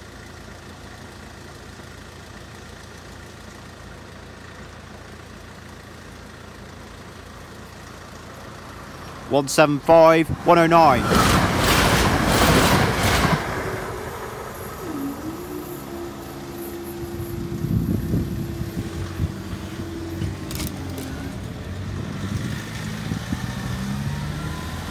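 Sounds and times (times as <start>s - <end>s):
road vehicles moving: 0.0s - 24.9s
crossing barriers humming: 4.6s - 24.9s
train rumbling past: 8.9s - 24.5s.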